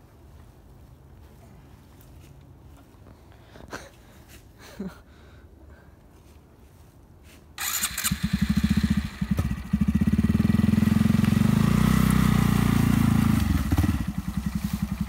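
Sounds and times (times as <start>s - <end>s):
motorcycle engine starting and revving: 7.6s - 15.0s.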